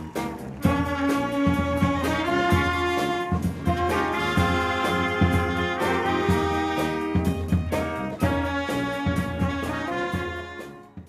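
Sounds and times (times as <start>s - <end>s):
brass band playing: 0.0s - 11.0s
steady drumbeat: 0.0s - 11.0s.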